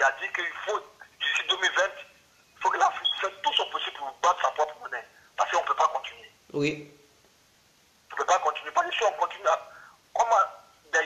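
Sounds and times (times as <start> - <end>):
person talking on telephone line: 0.0 - 6.4, 8.1 - 11.0.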